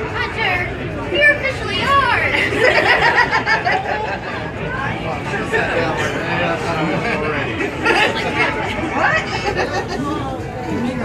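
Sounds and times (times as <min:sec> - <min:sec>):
group of people talking: 0:00.0 - 0:11.0.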